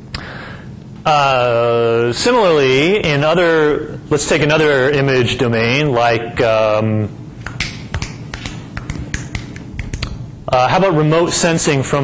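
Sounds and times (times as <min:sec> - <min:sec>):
low room hum: 0:00.0 - 0:12.0
sharp clicks and taps: 0:07.4 - 0:10.2.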